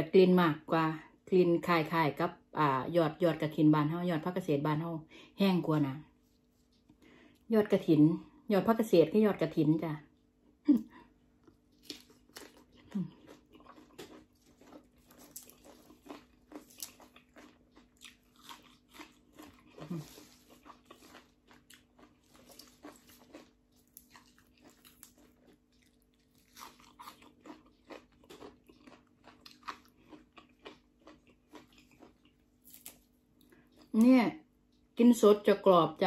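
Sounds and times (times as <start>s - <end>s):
person chewing crunchy food: 11.2s - 34.0s.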